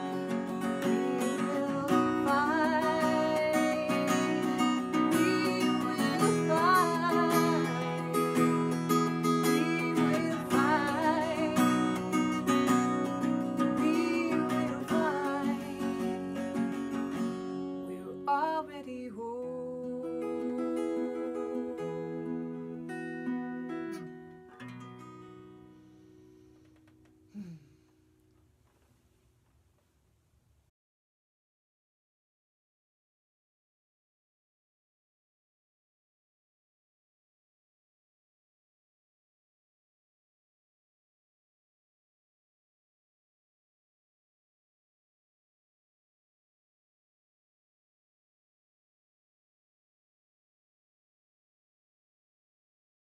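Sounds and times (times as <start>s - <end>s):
woman singing: 0.0s - 17.0s, 17.8s - 22.8s
acoustic guitar strumming: 0.0s - 18.8s, 19.4s - 27.1s.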